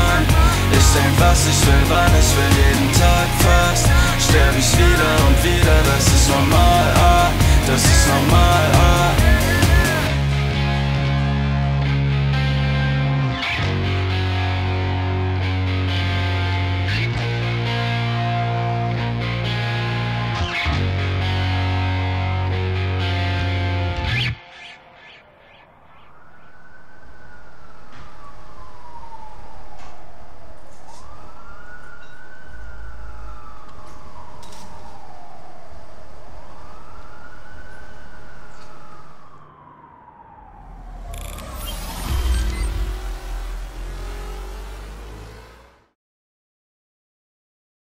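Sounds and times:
low hum: 0:00.0 - 0:22.7, 0:25.2 - 0:46.0
siren wailing: 0:00.0 - 0:46.0
rush of noise with low rumble: 0:25.2 - 0:45.9.

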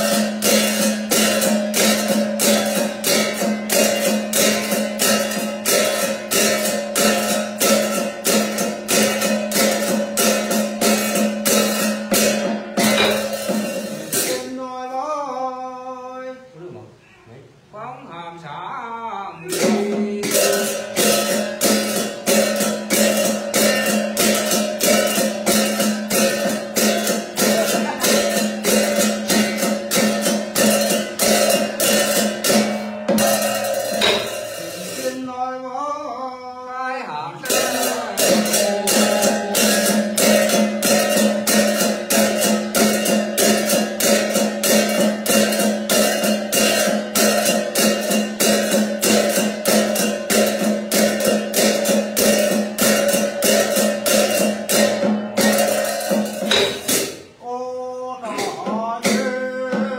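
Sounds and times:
fast percussive beat: 0:00.0 - 0:14.6, 0:19.5 - 0:35.3, 0:37.4 - 0:57.4, 0:58.2 - 0:59.9
person chanting: 0:17.8 - 0:21.0, 0:34.6 - 0:40.7, 0:57.4 - 0:59.9
steady held tone: 0:37.4 - 0:53.3.

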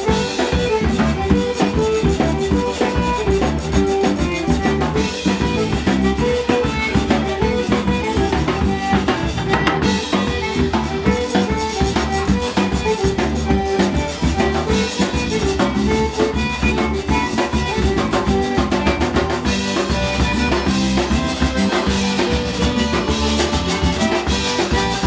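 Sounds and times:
accordion: 0:00.0 - 0:25.0
drum kit steady beat: 0:00.0 - 0:25.0
stringed instrument: 0:00.0 - 0:25.0.

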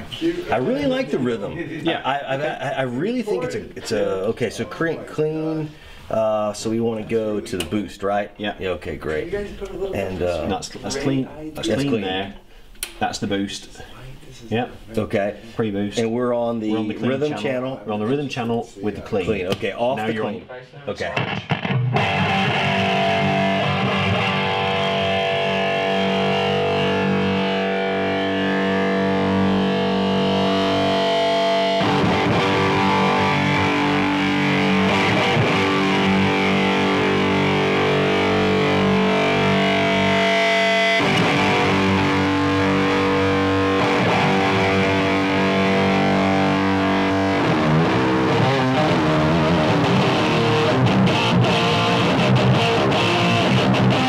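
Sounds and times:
overdriven electric guitar: 0:21.0 - 0:54.0.

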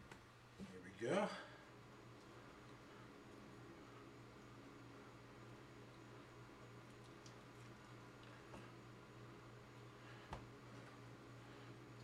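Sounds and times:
room tone hum: 0:00.0 - 0:12.0.

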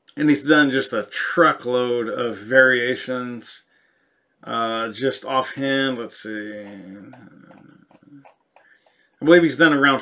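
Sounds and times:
faint clicks: 0:06.6 - 0:09.2.

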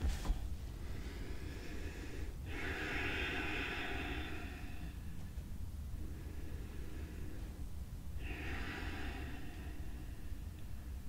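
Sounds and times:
woman breathing slowly: 0:00.4 - 0:11.0.

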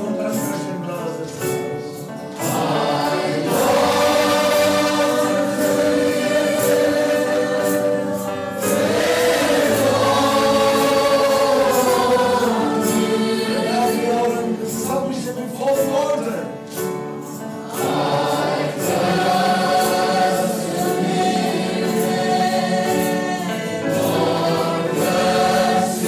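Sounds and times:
choir singing sacred music: 0:00.0 - 0:16.0, 0:16.6 - 0:26.0.

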